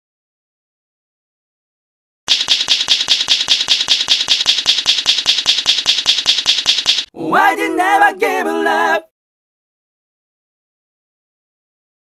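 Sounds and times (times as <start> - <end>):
crisp key clicks typing: 2.3 - 7.1.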